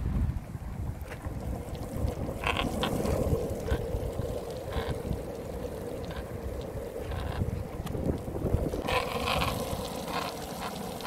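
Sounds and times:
longboard wheels rolling on asphalt: 0.0s - 11.0s
wind buffeting microphone: 0.0s - 11.0s.

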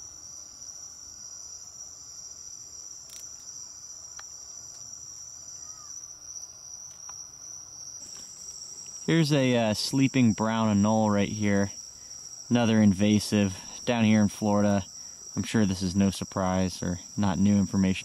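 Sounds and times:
higher insect trill: 0.0s - 18.0s
night insects trilling: 0.0s - 18.0s.

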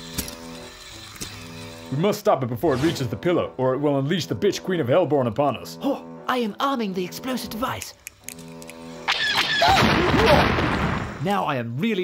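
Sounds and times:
loud explosion sound effect: 9.3s - 11.2s.

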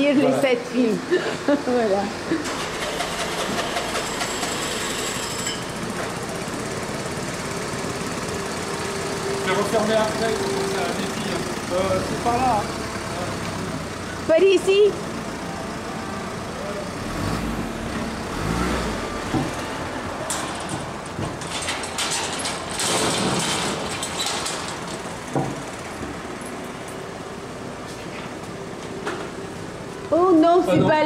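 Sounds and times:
van engine running: 0.0s - 31.0s.

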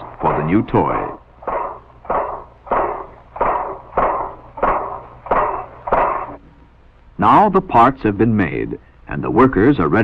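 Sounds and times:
punch press stamping: 0.2s - 6.4s.

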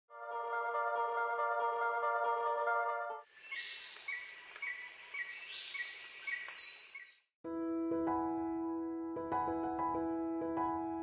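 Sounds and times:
soft piano music: 0.1s - 3.2s, 7.5s - 11.0s
steady high hiss: 3.2s - 6.3s
birds chirping: 3.2s - 7.2s.

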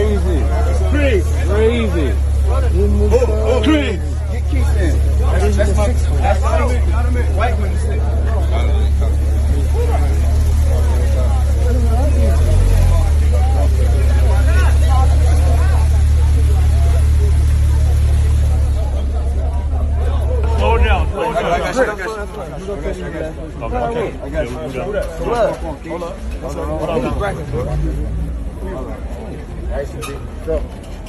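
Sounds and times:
crowd chatter: 0.0s - 31.0s
sports car engine rumbling: 0.0s - 31.0s.

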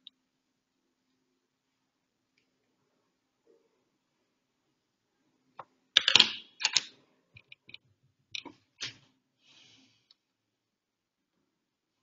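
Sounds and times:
computer keyboard keys clicking: 6.0s - 7.8s.

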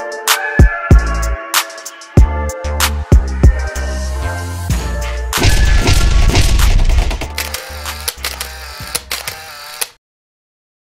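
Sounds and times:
mechanical clicks and ratcheting: 6.6s - 10.0s.

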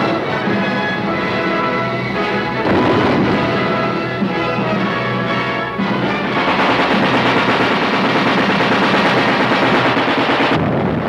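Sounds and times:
rapid machine-gun fire: 2.6s - 4.1s, 6.2s - 11.0s
gunfire: 2.6s - 4.8s, 6.1s - 11.0s.

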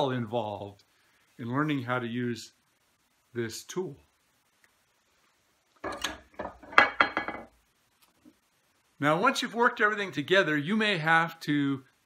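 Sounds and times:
wooden knocks: 5.8s - 7.5s.

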